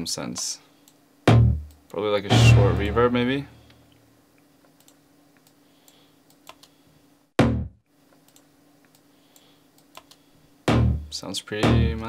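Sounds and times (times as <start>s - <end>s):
short loud synth chord stab: 2.3s - 3.3s
computer mouse and keyboard clicks: 4.6s - 6.8s, 8.2s - 10.2s.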